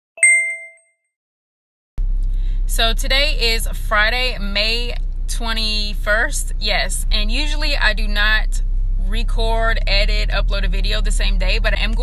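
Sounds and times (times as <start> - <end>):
notification bell ding: 0.2 - 0.8.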